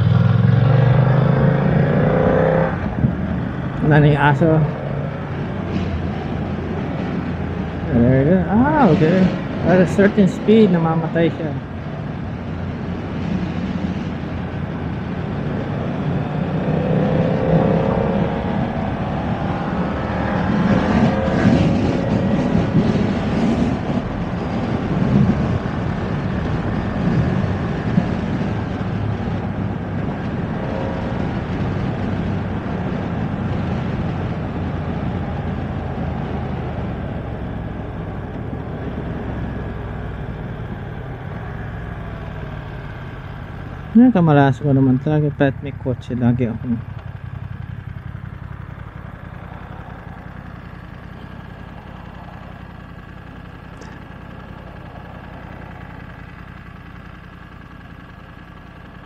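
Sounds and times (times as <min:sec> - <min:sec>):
rushing wind: 0:00.0 - 0:44.2, 0:44.9 - 0:59.0
motorcycle engine accelerating: 0:00.0 - 0:59.0.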